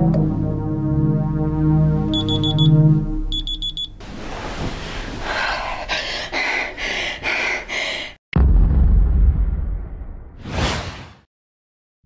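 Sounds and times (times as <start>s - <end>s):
smartphone alarm beeps: 2.1s - 4.0s.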